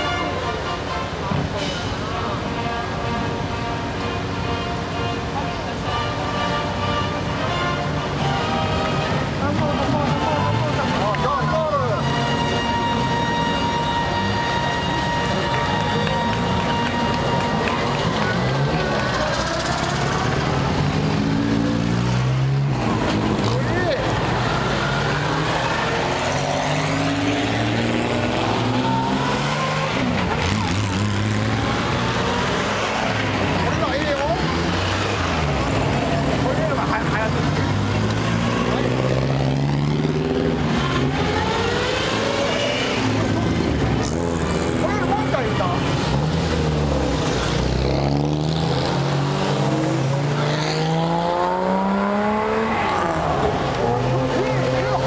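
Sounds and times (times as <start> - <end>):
car engines accelerating: 0.0 - 55.0
crowd voices: 0.0 - 55.0.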